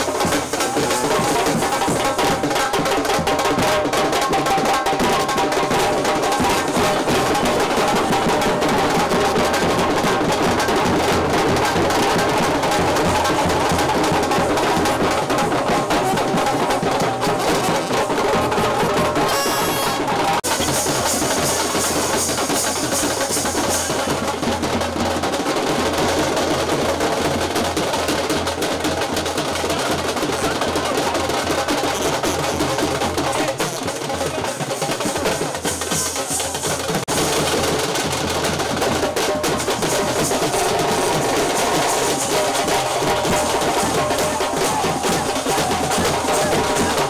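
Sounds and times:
drums and snare rolls: 0.0 - 47.0
brass band playing: 19.0 - 20.4.

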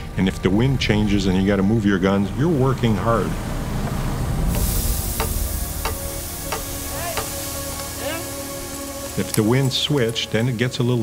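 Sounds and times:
faint background music: 0.0 - 11.0
snowmaking gun spraying hiss: 4.5 - 10.1.

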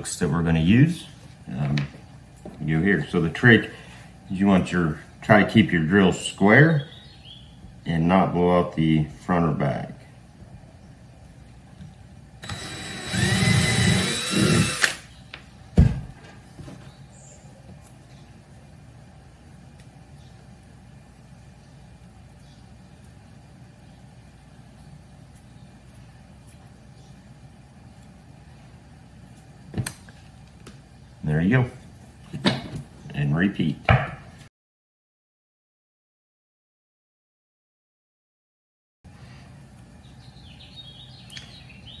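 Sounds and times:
cordless drill boring into wood: 12.4 - 15.0.

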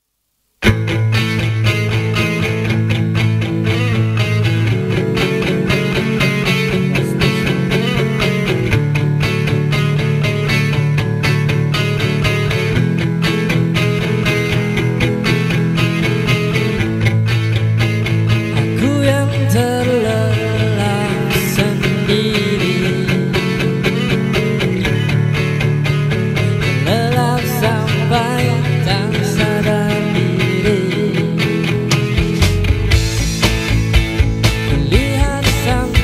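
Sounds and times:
pop-rock song with strummed guitar: 0.6 - 36.0.

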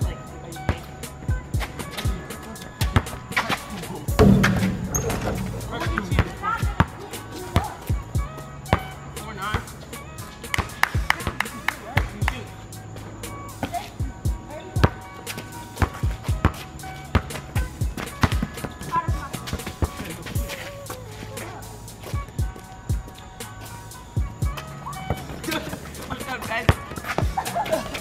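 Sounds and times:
background music beat: 0.0 - 28.0
basketball bouncing on concrete: 4.1 - 8.9, 14.8 - 15.1, 15.8 - 20.0, 26.6 - 27.4.

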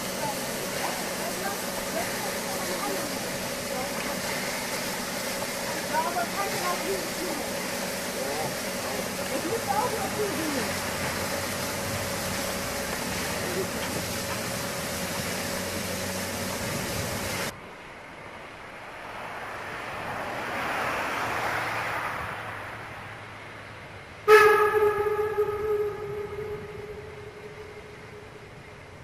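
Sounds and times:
steam whistle blast: 0.0 - 14.4, 24.3 - 28.8
steam hissing: 0.0 - 17.6, 24.3 - 29.0
steam train working: 0.0 - 17.6, 18.3 - 29.0.

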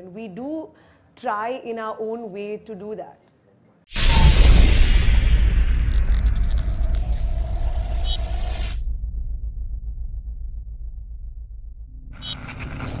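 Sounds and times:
whoosh: 3.9 - 13.0
deep steady rumble: 4.3 - 12.2.

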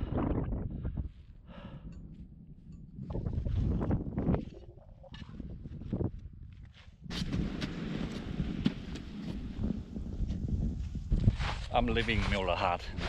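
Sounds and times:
wind noise on microphone: 0.0 - 13.0.

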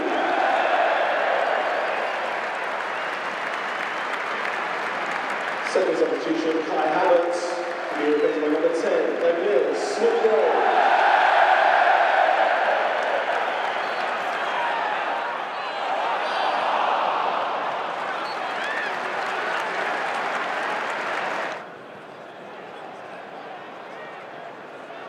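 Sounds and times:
stadium crowd clapping and cheering: 0.0 - 25.0.

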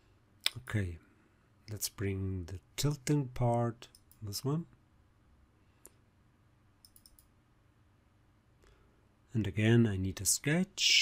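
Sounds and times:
computer mouse clicks: 6.8 - 7.3.

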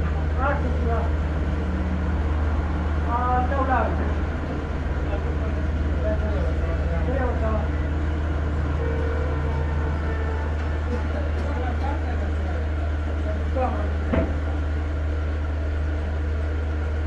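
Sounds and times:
low mechanical hum: 0.0 - 17.0.

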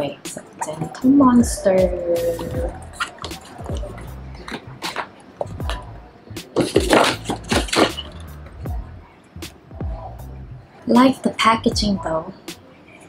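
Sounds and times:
background music with bass line: 1.0 - 10.7, 11.6 - 12.2
pouch rustling and scraping: 2.2 - 5.6.

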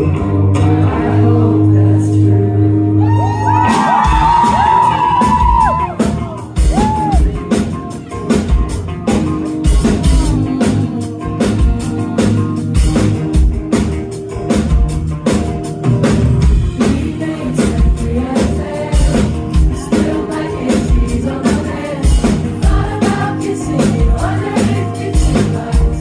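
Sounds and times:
electric and acoustic guitars: 0.0 - 26.0
crowd whooping and shouting: 2.9 - 7.5
drum kit beat: 3.4 - 26.0
woman singing: 9.9 - 12.3, 16.8 - 26.0.

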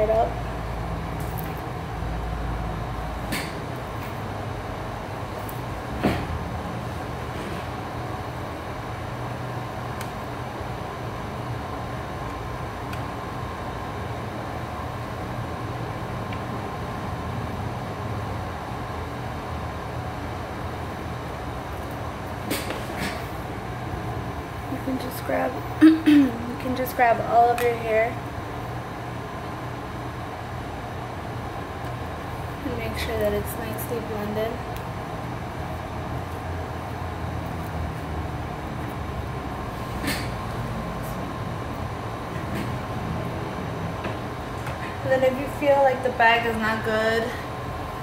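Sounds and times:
air conditioner humming: 0.0 - 48.0.

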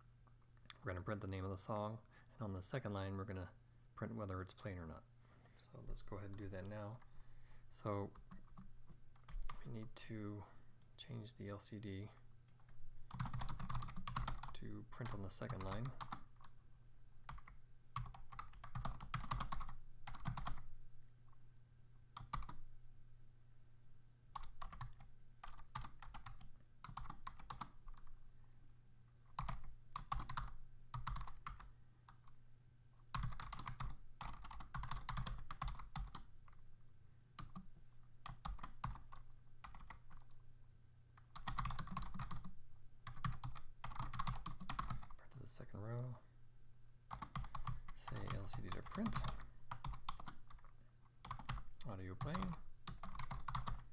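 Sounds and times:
low steady hum: 0.0 - 53.9
keyboard typing: 12.5 - 16.6, 17.3 - 20.7, 22.2 - 22.6, 24.3 - 28.1, 29.3 - 32.4, 33.1 - 36.6, 37.4 - 40.4, 41.2 - 45.2, 47.1 - 53.9.

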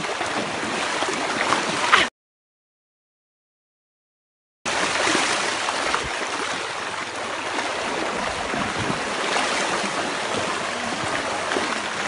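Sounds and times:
river water rushing through rapids: 4.7 - 12.0.

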